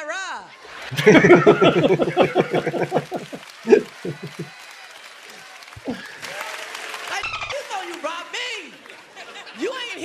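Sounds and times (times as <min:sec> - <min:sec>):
audience applauding: 0:00.6 - 0:09.9.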